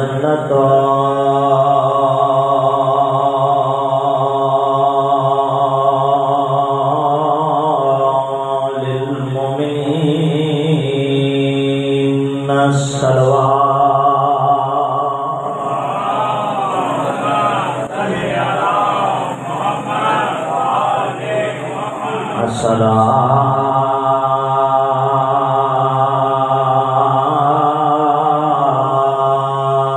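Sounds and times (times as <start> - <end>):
man chanting through loudspeaker: 0.0 - 29.9.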